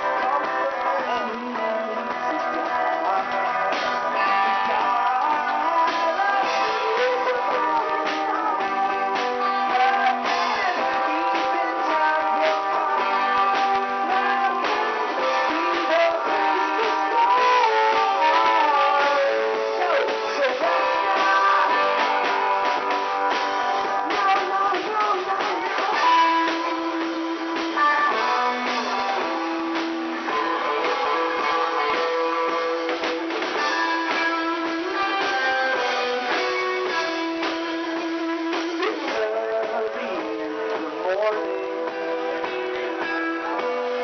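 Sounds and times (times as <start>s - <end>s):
acoustic guitars: 0.0s - 44.0s
keyboard chords: 0.0s - 44.0s.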